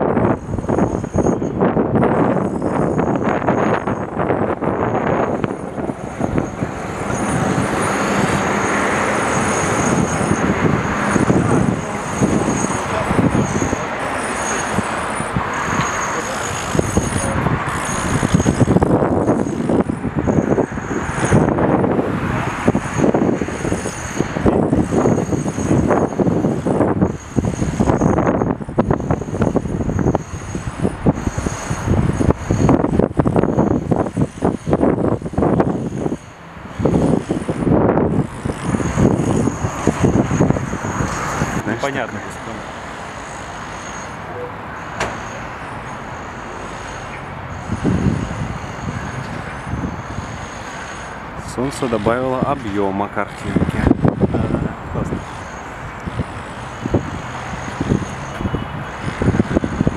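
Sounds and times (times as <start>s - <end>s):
cars passing: 0.0s - 59.9s.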